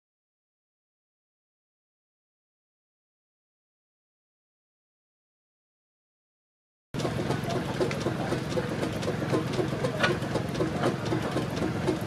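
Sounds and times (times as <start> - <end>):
engine idling: 7.0 - 12.0.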